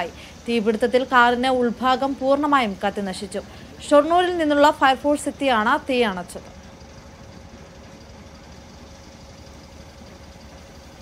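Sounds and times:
engine low rumble: 0:00.0 - 0:11.0
faint steady hum: 0:00.0 - 0:11.0.

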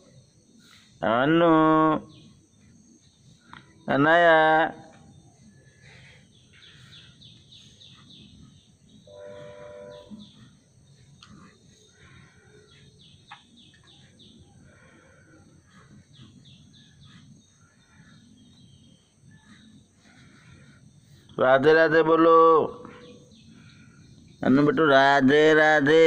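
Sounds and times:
small birds chirping: 0:00.0 - 0:26.0
short steady-pitched tone: 0:09.1 - 0:10.3.

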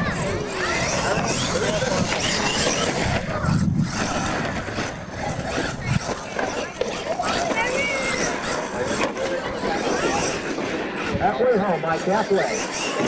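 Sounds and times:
crowd chatter: 0:00.0 - 0:13.0
toy truck driving over gravel: 0:00.0 - 0:13.0.

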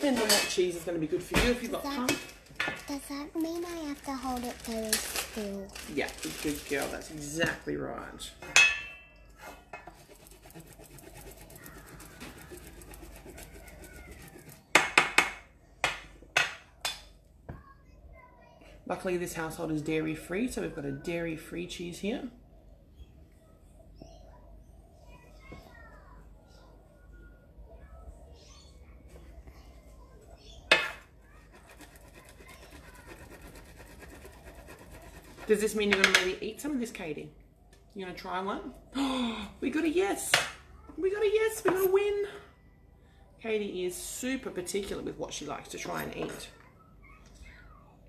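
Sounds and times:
cheese grater scraping: 0:09.5 - 0:14.6, 0:31.5 - 0:35.9.

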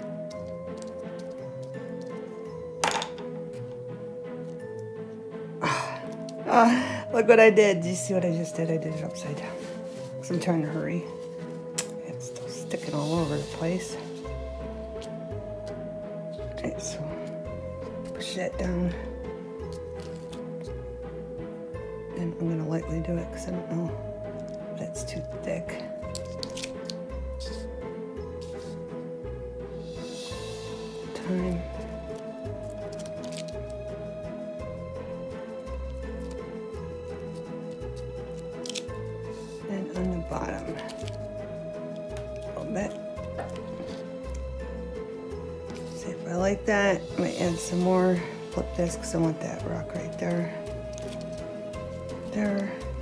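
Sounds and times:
background music with held notes: 0:00.0 - 0:53.0
cloth dabbing on paper: 0:09.0 - 0:11.6, 0:28.4 - 0:28.8, 0:35.5 - 0:44.4, 0:45.7 - 0:53.0.

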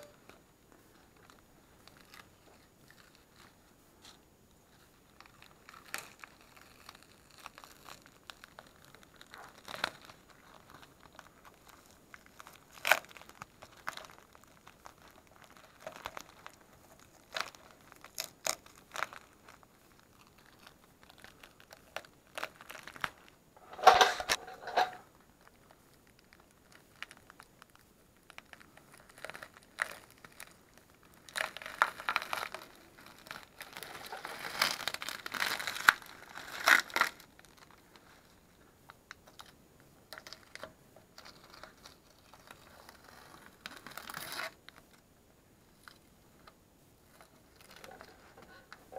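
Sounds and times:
tape crumpling in hand: 0:04.7 - 0:38.4, 0:40.1 - 0:45.0, 0:47.1 - 0:48.9
masking tape ripping off: 0:31.2 - 0:37.6, 0:42.3 - 0:44.6.

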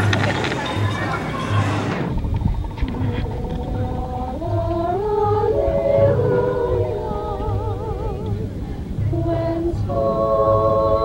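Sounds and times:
women singing a cappella harmony: 0:02.8 - 0:11.0.

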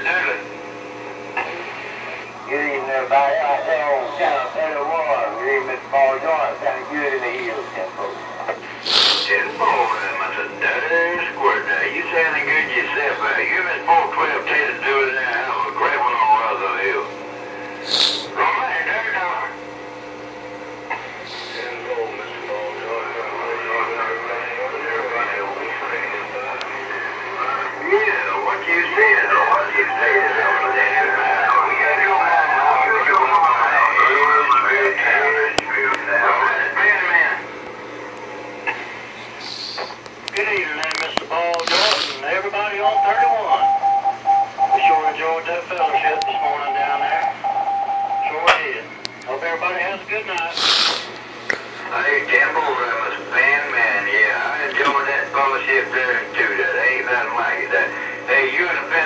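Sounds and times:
voices over radio speaker: 0:00.0 - 0:00.5, 0:01.3 - 0:19.6, 0:20.8 - 0:37.6, 0:38.6 - 0:59.0
radio crackles: 0:23.1 - 0:43.5, 0:44.6 - 0:47.4.

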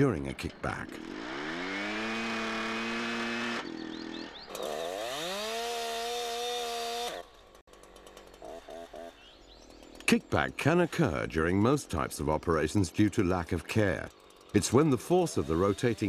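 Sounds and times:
chainsaw revving: 0:00.5 - 0:16.0.

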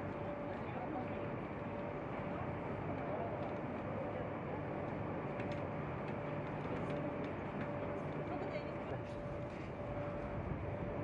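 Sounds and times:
industrial hall mechanical hum: 0:00.0 - 0:11.0.

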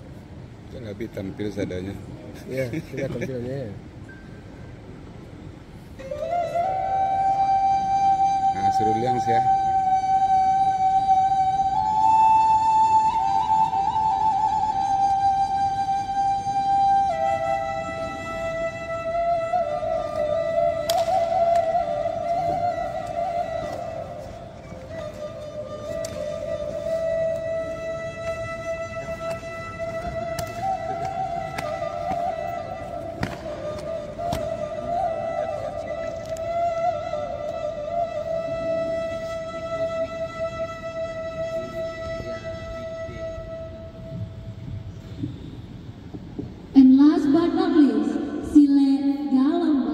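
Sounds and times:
wind instrument slow melody: 0:02.0 - 0:46.8.

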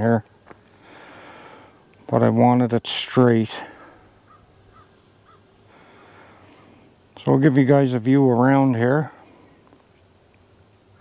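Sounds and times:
bird calling faintly: 0:03.6 - 0:07.0, 0:09.2 - 0:11.0.

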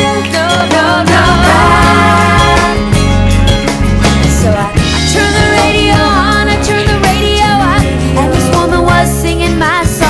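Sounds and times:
person singing: 0:00.0 - 0:02.9, 0:04.4 - 0:10.0
steady bass line: 0:00.0 - 0:10.0.

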